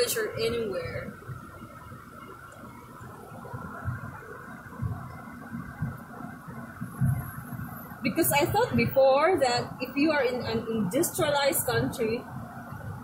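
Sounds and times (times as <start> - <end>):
constant hum: 0.0 - 13.0
road and engine rumble: 0.0 - 13.0
low thumps: 3.4 - 9.6.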